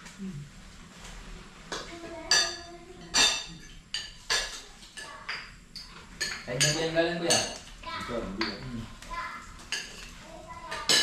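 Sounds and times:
cutlery clinking on plates: 1.7s - 7.7s, 9.7s - 11.0s.

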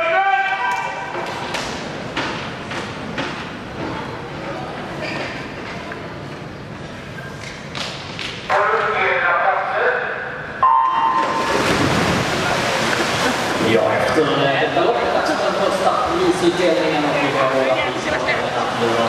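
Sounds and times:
crowd murmuring: 11.6s - 19.0s.

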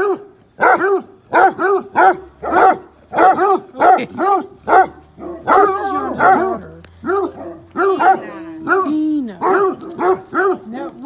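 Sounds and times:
dogs barking: 0.0s - 11.0s.

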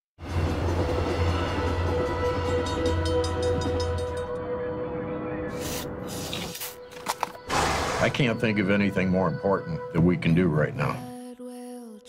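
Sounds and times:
train rumbling past: 0.2s - 4.5s.

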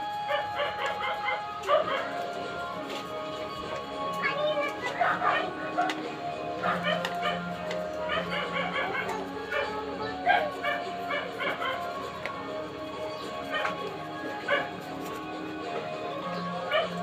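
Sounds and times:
background music: 0.0s - 17.0s
dog yapping: 0.3s - 2.2s, 4.5s - 5.9s, 6.6s - 12.0s, 13.4s - 13.8s, 14.4s - 14.8s, 16.7s - 17.0s.

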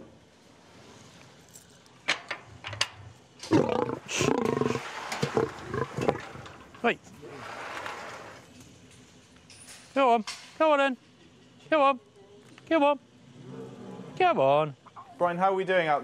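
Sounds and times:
lion calling: 3.5s - 6.4s.

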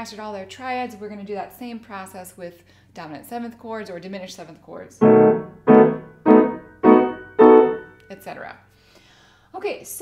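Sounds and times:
grand piano chords: 5.0s - 8.0s.

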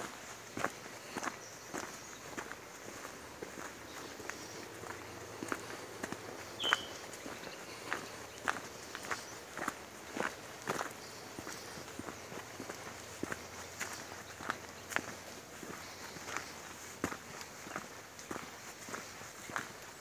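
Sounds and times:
footsteps on rocky dirt trail: 0.0s - 20.0s.

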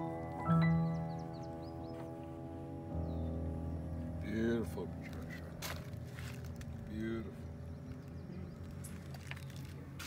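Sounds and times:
sustained song notes: 0.0s - 9.0s.

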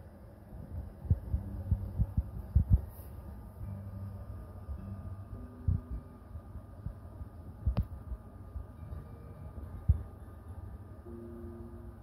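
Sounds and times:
steady low hum: 0.0s - 12.0s
low dull thumps: 0.7s - 6.1s.

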